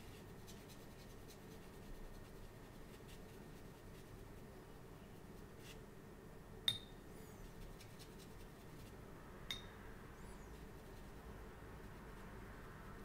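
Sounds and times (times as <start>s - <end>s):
paintbrush clinking on glass: 6.7s - 7.0s, 9.5s - 9.8s.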